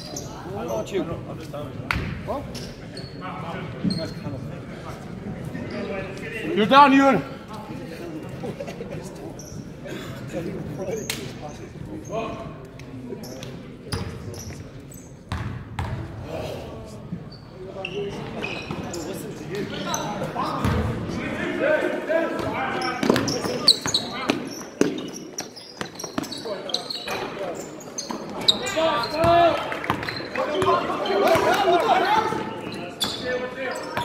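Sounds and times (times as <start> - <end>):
players calling out: 25.4 - 34.0.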